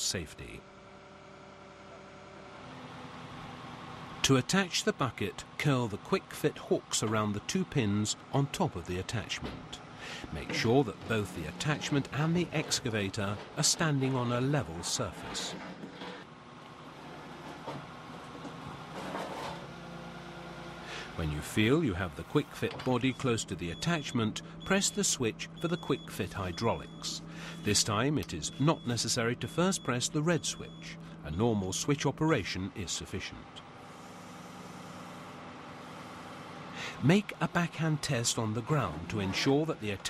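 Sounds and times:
excavator diesel engine humming: 0.0 - 40.0.

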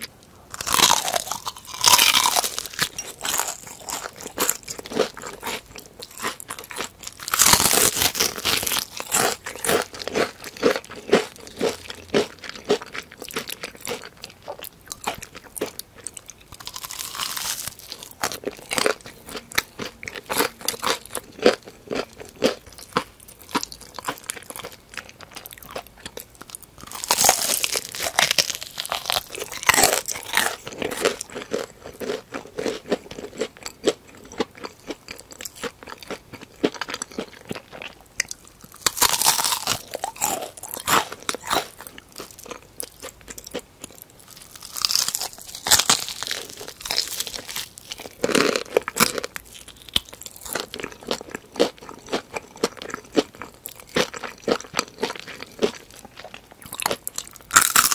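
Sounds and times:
crunching fried chicken: 0.0 - 57.9.

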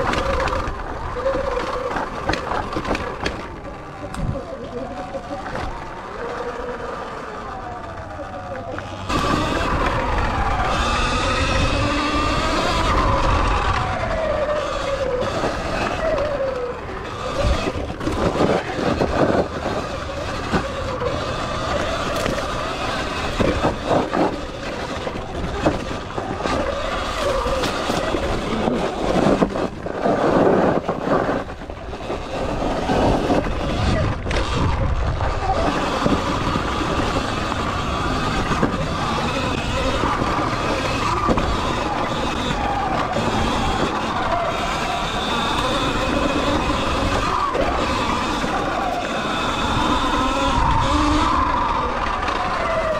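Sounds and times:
electric motorbike motor whining: 0.0 - 52.9.

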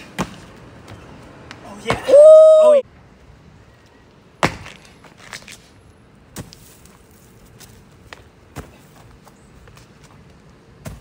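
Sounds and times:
footfalls on dirt and mulch: 6.3 - 11.0
feet landing with thud: 7.6 - 9.8, 10.8 - 11.0.

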